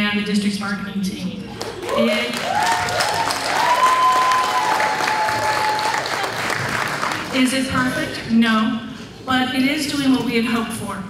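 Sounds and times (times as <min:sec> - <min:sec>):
audience applauding: 0:01.6 - 0:07.4.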